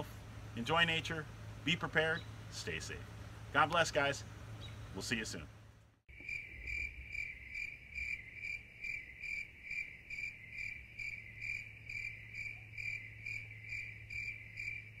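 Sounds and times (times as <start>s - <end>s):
low steady hum: 0.0s - 15.0s
cricket chirping: 6.1s - 15.0s.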